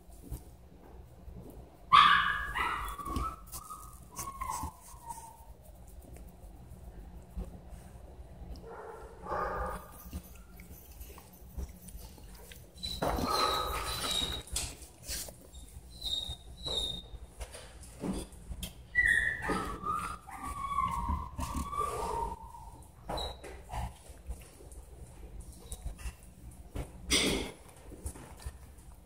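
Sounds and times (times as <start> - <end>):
dog whimpering: 19.0 - 22.8.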